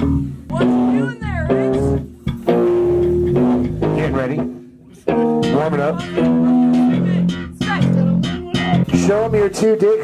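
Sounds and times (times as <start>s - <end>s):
electric guitar through amp: 0.0s - 9.7s
held low bass guitar notes: 0.0s - 10.0s.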